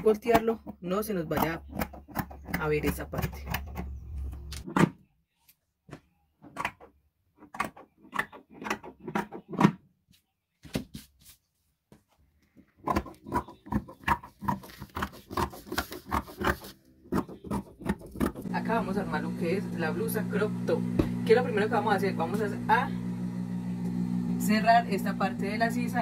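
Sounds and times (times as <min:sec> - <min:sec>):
scissors snipping fabric: 0:12.8 - 0:18.4.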